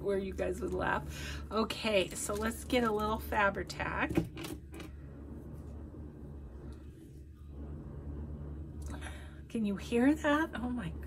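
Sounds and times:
low mechanical drone: 0.0s - 11.0s.

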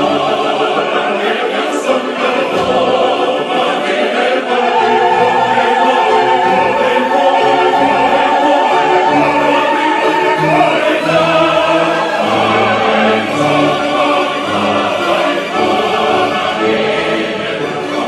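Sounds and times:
opera voices singing: 0.0s - 18.0s
orchestra playing: 0.0s - 18.0s.

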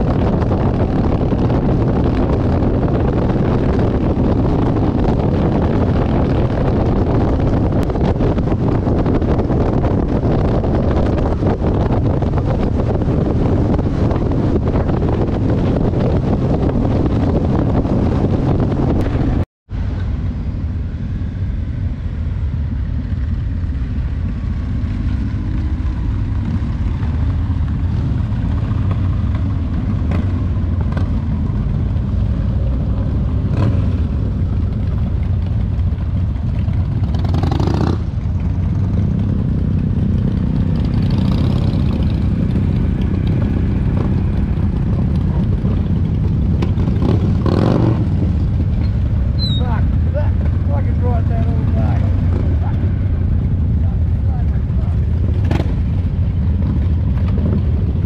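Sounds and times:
motorcycles riding by: 22.0s - 58.0s.

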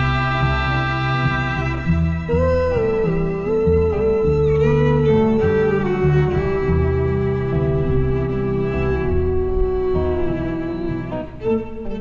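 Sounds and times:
electric guitar chords: 0.0s - 12.0s
plucked double bass: 0.0s - 12.0s
violin holding long notes: 0.0s - 12.0s.

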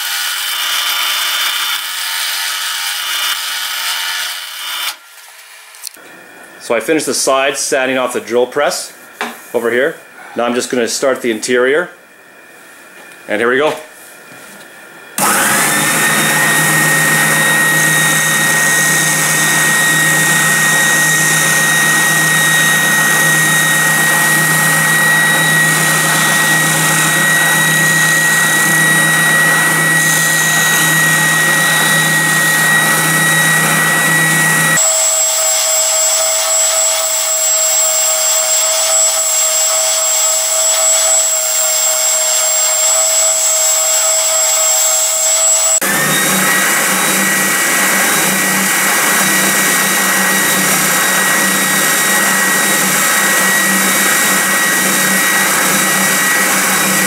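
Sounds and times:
spindle sander high whine: 14.5s - 57.0s.

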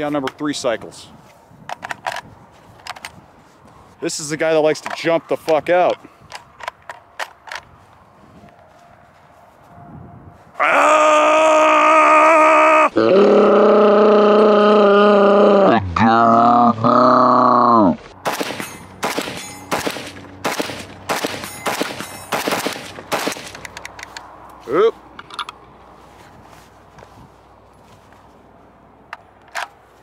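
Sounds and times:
man yelling: 10.6s - 17.7s
rapid semi-automatic rifle fire: 18.2s - 23.6s.

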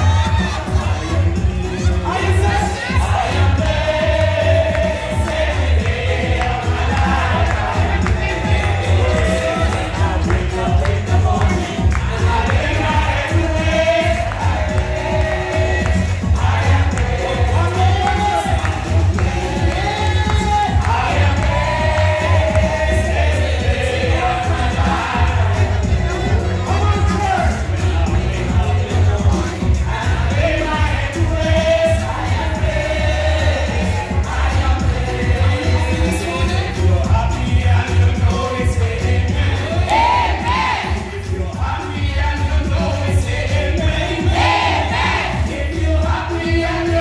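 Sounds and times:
choir singing church chorus: 0.0s - 47.0s
instrumental accompaniment with bass: 0.0s - 47.0s.

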